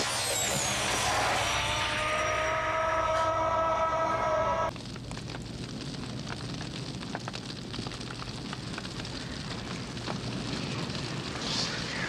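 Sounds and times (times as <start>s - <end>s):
rushing noise with falling whistle: 0.0s - 4.7s.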